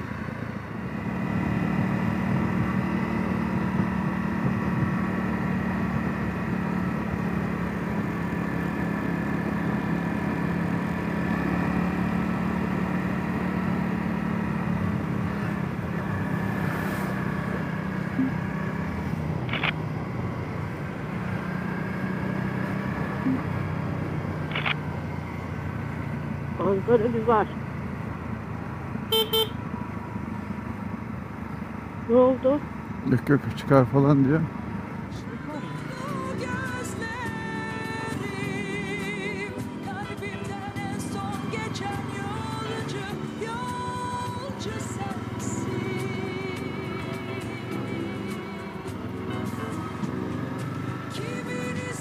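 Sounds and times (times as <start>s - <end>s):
motorcycle engine droning: 0.0s - 52.0s
road noise: 0.0s - 52.0s
wind: 0.0s - 52.0s
vehicle horn beeps: 29.1s - 29.6s.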